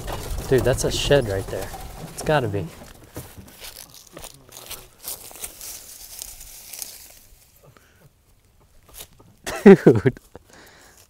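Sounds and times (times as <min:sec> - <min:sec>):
grass rustling: 0:00.0 - 0:11.0
boots walking through long grass: 0:03.1 - 0:07.6.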